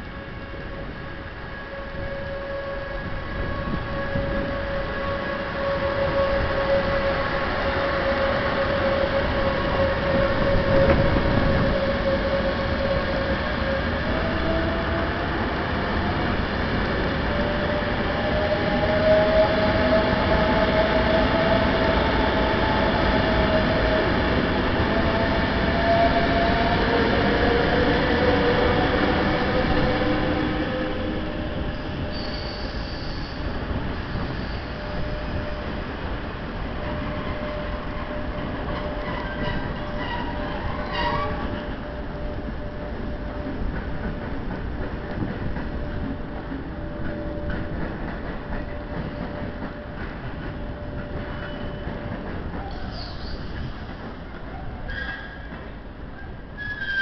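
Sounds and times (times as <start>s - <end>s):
train rolling rumble: 0.0s - 57.0s.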